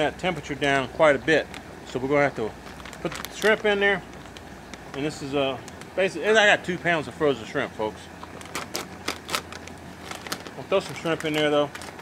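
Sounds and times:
plastic bag crinkling: 0.5s - 6.1s, 8.2s - 12.0s
plastic clicks and crackles: 1.4s - 1.7s, 2.6s - 6.0s, 8.2s - 12.0s.

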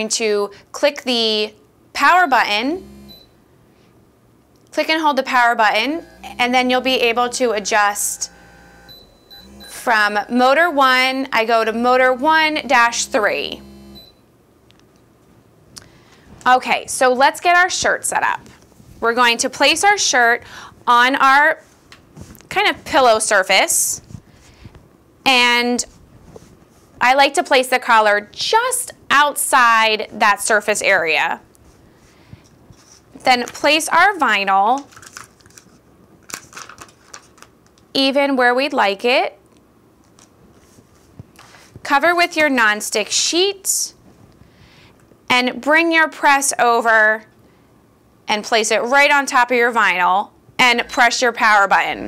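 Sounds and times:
plastic sheet crinkling: 34.6s - 37.9s.

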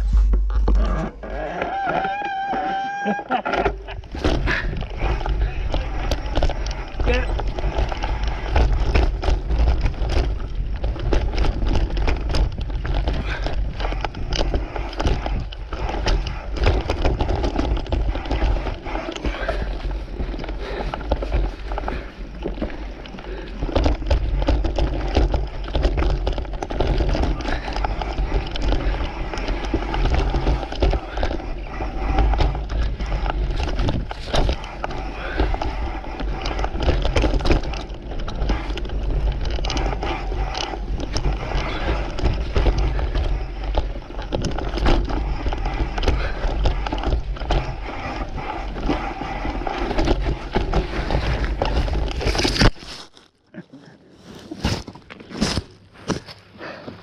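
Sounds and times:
bike rattling over bumps: 0.0s - 53.1s
bike tyres on dirt: 0.0s - 57.0s.

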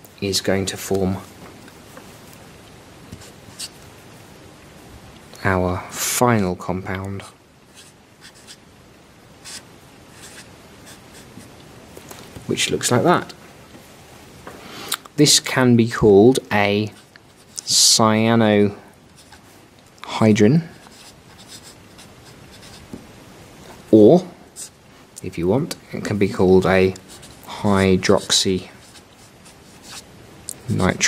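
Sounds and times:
marker scratching on paper: 3.1s - 3.8s, 7.7s - 8.6s, 9.4s - 11.5s, 19.2s - 19.5s, 20.8s - 23.0s, 27.0s - 27.4s, 28.8s - 30.0s.

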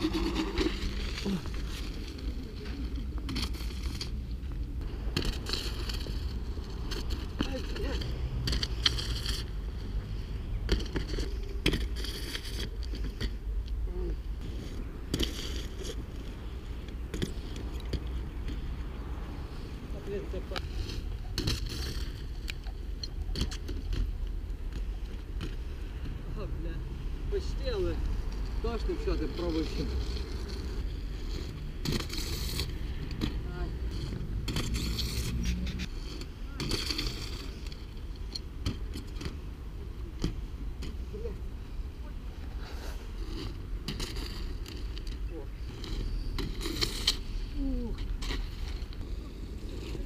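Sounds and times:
bike scrapes and knocks: 0.0s - 4.2s, 5.1s - 10.0s, 10.6s - 13.4s, 14.4s - 18.7s, 20.0s - 25.7s, 28.3s - 39.5s, 42.6s - 50.0s
bicycle tyres rolling over snow: 0.0s - 26.7s, 27.3s - 50.0s.

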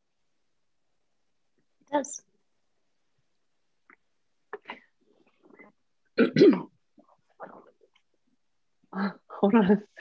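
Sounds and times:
woman clearing her throat: 6.2s - 6.7s.

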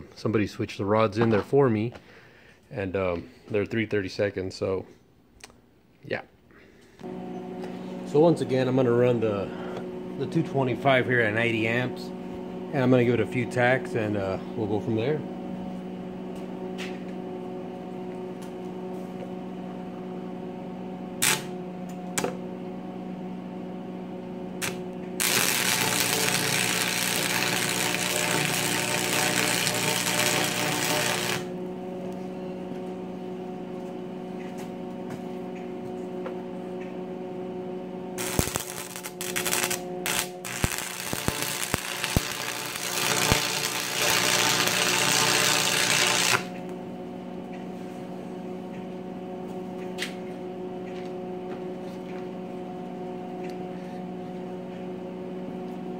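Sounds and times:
welder hum: 6.5s - 48.6s
welding arc crackling: 21.2s - 21.5s, 24.6s - 31.6s, 38.2s - 46.7s
welding rod striking clicks: 38.2s - 46.6s.

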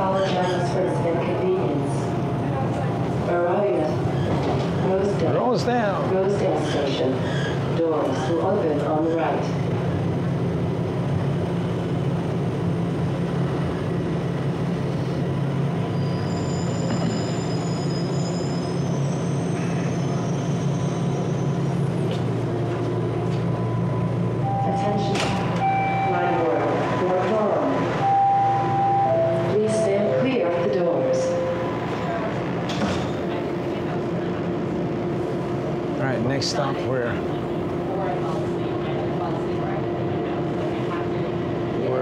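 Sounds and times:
subway train running hum: 0.0s - 42.0s.

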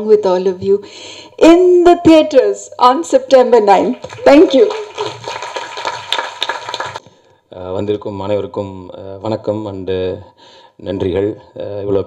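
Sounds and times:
audience applauding: 3.9s - 7.0s.

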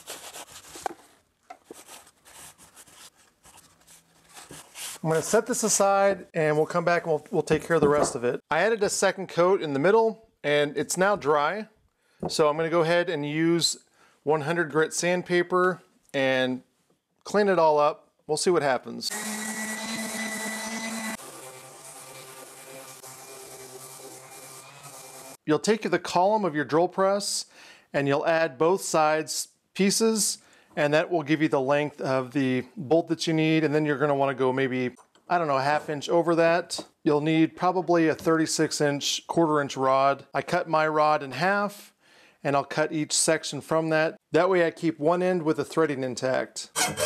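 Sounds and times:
orbital sander humming on wood: 19.1s - 25.4s.

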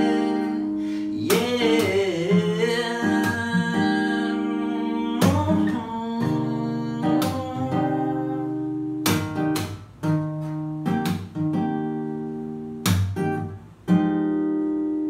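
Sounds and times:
acoustic guitar chords strummed: 0.0s - 15.0s.

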